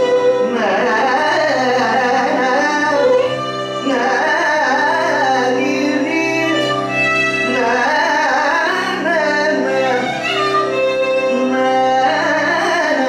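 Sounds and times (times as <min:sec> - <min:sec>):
man singing: 0:00.0 - 0:13.0
violin melody: 0:00.0 - 0:13.0.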